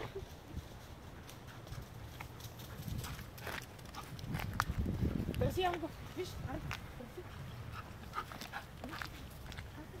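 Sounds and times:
footsteps on asphalt: 0:03.0 - 0:09.8.

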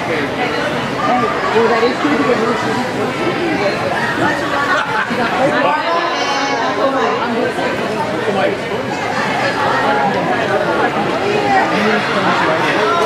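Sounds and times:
chatter of many people: 0:00.0 - 0:13.0.

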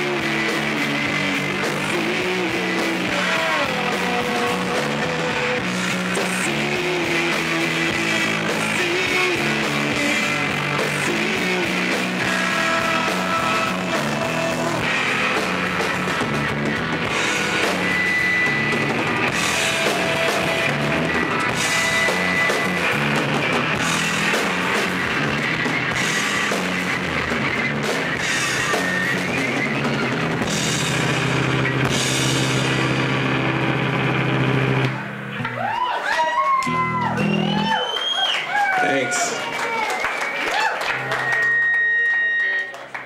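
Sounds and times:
live rock band playing: 0:00.0 - 0:43.0
audience whooping and cheering: 0:15.5 - 0:25.6, 0:35.3 - 0:43.0.

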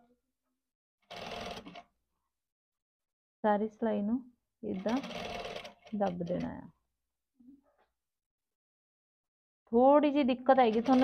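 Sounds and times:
sewing machine stitching fabric: 0:01.0 - 0:01.9, 0:04.6 - 0:06.7, 0:10.5 - 0:11.0.

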